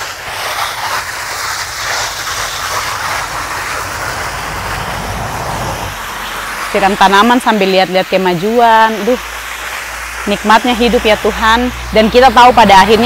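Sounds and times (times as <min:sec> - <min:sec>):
hose spraying water: 0:00.0 - 0:13.0.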